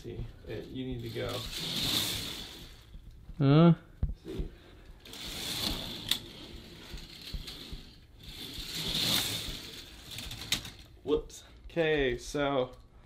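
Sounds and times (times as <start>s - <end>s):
toy roller coaster rattling: 0.6s - 2.9s, 5.0s - 10.9s.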